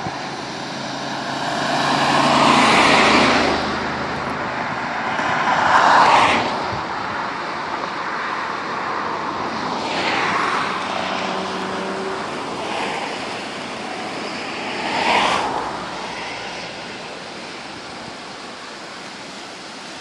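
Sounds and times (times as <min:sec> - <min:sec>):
steady traffic rush: 0:00.0 - 0:20.0
vehicles passing on highway: 0:00.0 - 0:20.0.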